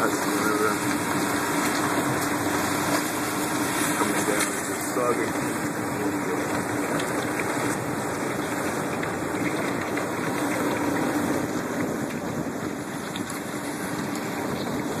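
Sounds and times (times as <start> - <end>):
boat engine running: 0.0 - 15.0
ice crackling: 0.0 - 15.0
water and ice rushing: 0.0 - 15.0.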